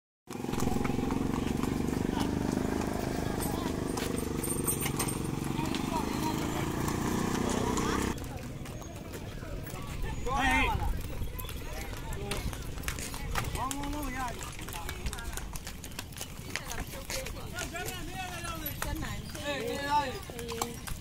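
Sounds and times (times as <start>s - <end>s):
horse hooves clip-clopping on road: 0.3s - 21.0s.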